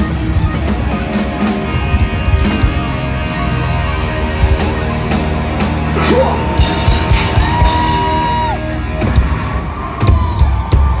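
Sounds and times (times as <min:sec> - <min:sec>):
live hard rock band playing: 0:00.0 - 0:11.0
drums hitting hard: 0:04.4 - 0:11.0.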